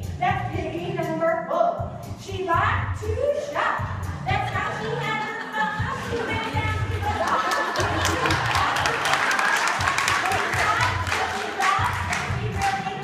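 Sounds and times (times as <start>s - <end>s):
crowd shouting and cheering: 4.8s - 13.0s
people clapping: 5.8s - 13.0s.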